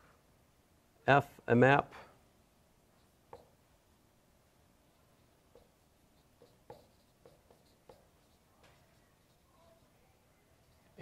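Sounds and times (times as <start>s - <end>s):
marker squeaking on whiteboard: 2.9s - 3.6s, 4.8s - 11.0s.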